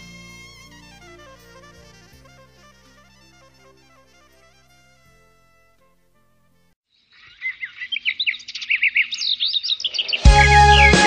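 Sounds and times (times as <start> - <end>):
small songbirds chirping: 6.9 - 11.0.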